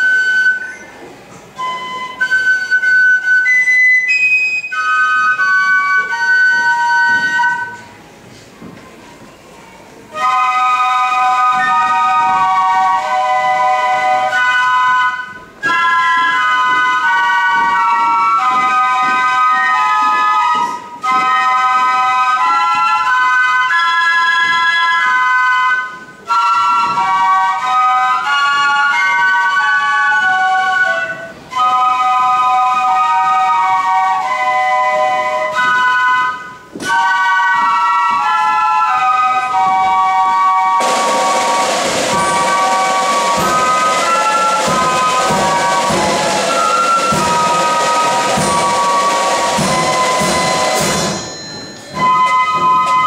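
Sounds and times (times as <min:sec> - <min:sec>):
flute band playing slow tune: 0:00.0 - 0:53.0
drums: 0:01.8 - 0:53.0.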